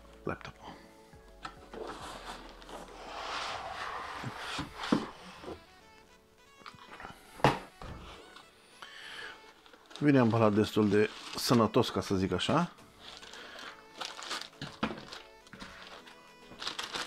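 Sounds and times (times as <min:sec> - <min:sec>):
cardboard rustling and scraping: 0:01.7 - 0:05.8, 0:09.4 - 0:12.4, 0:13.0 - 0:17.0
foam rubbing and squeaking: 0:01.7 - 0:05.9, 0:09.5 - 0:13.3.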